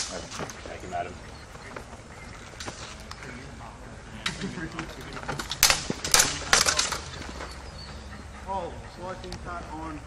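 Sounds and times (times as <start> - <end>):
swords clashing: 5.4 - 7.1.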